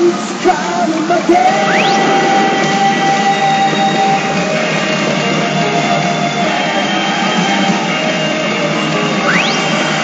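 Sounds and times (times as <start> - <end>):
rock music with electric guitar: 0.0 - 10.0.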